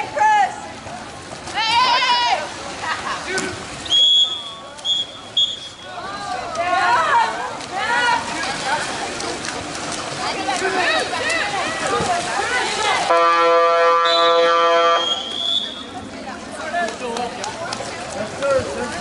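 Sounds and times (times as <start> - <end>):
spectators' voices: 0.0 - 13.6, 14.4 - 19.0
high whistle: 3.8 - 5.9, 14.0 - 15.8
loud buzzing horn: 13.1 - 15.2.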